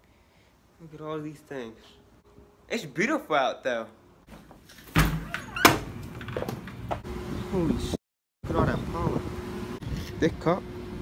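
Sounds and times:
door pushed open: 0:04.9 - 0:06.7.

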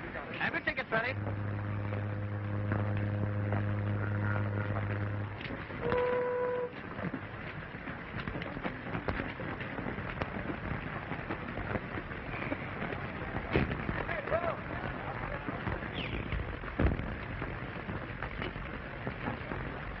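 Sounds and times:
steady noisy background: 0:00.0 - 0:20.0
ship's horn blast: 0:01.1 - 0:06.8.

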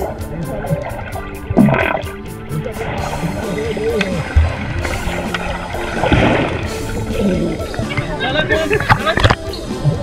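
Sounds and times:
song playing: 0:00.0 - 0:10.0.

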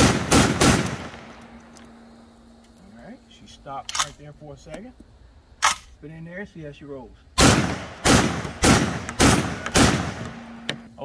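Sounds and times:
shotgun shots with echo: 0:00.0 - 0:01.4, 0:07.4 - 0:10.6.

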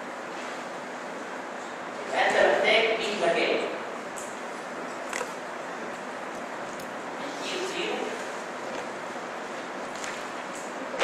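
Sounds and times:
room noise hiss: 0:00.0 - 0:11.0.

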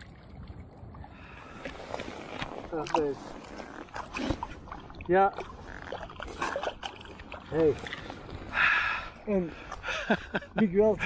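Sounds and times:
water sloshing around legs: 0:00.0 - 0:08.6
wind rumble on microphone: 0:00.0 - 0:08.6.

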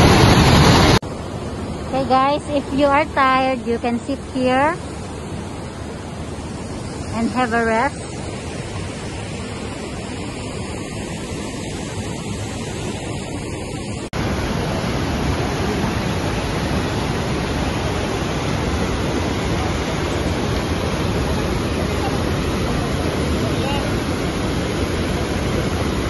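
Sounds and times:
waterfall and rapids rushing: 0:00.0 - 0:26.0.

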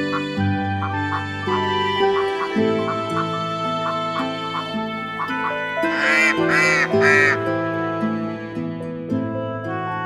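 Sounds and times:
duck quacking: 0:00.0 - 0:07.4
soft background music: 0:00.0 - 0:10.0.

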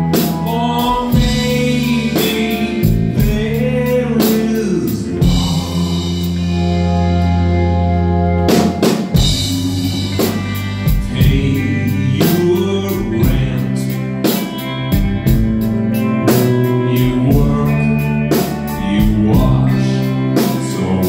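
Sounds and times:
man singing lead vocal: 0:00.0 - 0:06.6, 0:09.2 - 0:14.8, 0:16.0 - 0:21.0
live band playing slow song: 0:00.0 - 0:21.0.

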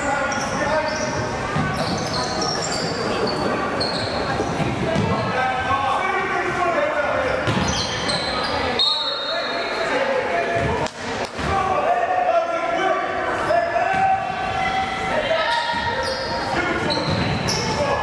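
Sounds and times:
sneakers squeaking: 0:00.0 - 0:05.4, 0:07.2 - 0:09.9, 0:13.9 - 0:18.0
voices echoing: 0:00.0 - 0:18.0.

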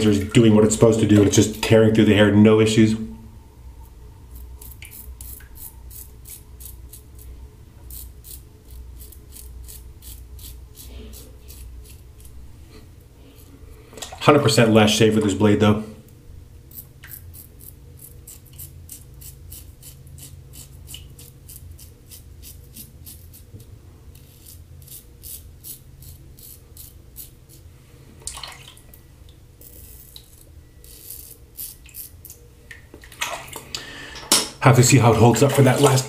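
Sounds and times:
razor scraping stubble: 0:03.8 - 0:13.6, 0:16.7 - 0:27.7, 0:29.6 - 0:32.4
crackle of hair being cut: 0:04.3 - 0:07.3, 0:07.9 - 0:12.4, 0:16.7 - 0:27.7, 0:29.6 - 0:32.4.

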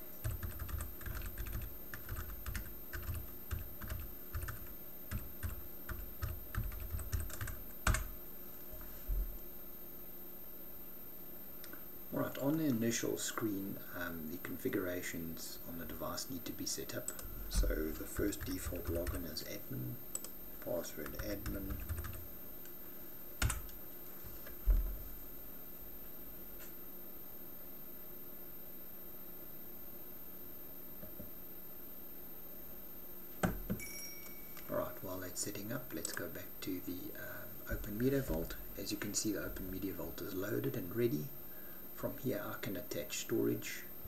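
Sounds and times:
computer keyboard typing: 0:00.2 - 0:08.1, 0:17.1 - 0:19.2, 0:21.0 - 0:22.2, 0:23.4 - 0:23.8.

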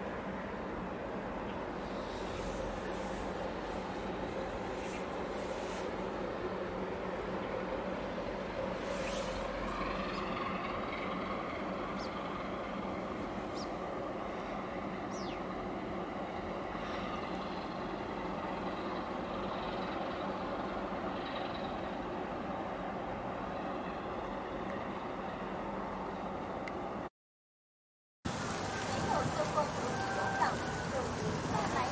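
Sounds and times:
engine drone: 0:00.0 - 0:26.9, 0:28.3 - 0:31.9
wind: 0:00.0 - 0:27.1, 0:28.2 - 0:31.9
water noise: 0:28.3 - 0:31.9.

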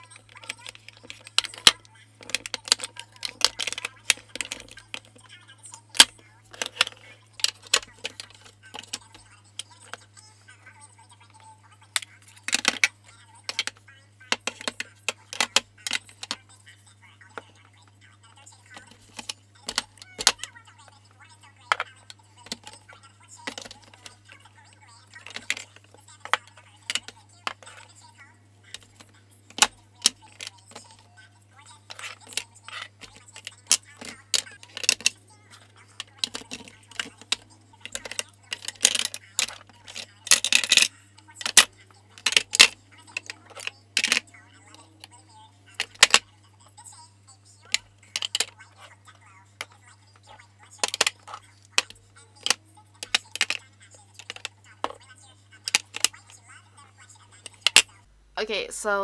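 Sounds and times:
makeup containers clattering: 0:00.0 - 0:10.2, 0:11.9 - 0:16.4, 0:18.6 - 0:20.5, 0:21.6 - 0:31.1, 0:31.7 - 0:46.3, 0:47.6 - 0:48.8, 0:49.6 - 0:55.0, 0:55.6 - 0:56.4.

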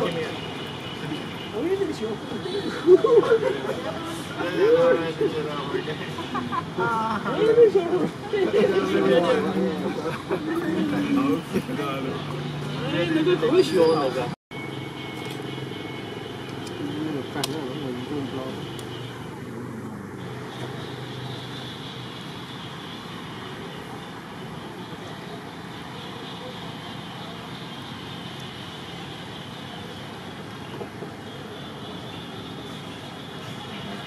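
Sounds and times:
steady outdoor hiss: 0:00.0 - 0:34.0.

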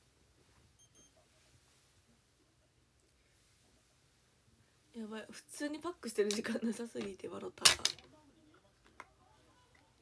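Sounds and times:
faint short electronic beeps: 0:00.8 - 0:01.2.

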